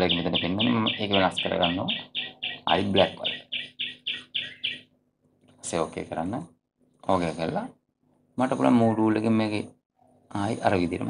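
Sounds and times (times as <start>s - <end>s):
short high bird chirps: 0.1s - 4.9s.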